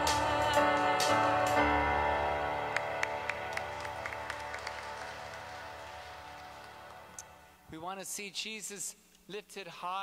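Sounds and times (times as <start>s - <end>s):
church hymn chord: 0.0s - 7.9s
congregation hand claps: 2.7s - 7.4s.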